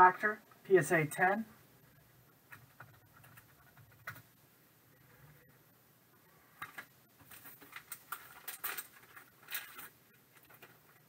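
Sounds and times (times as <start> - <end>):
paper sleeve rustling: 6.8 - 11.0.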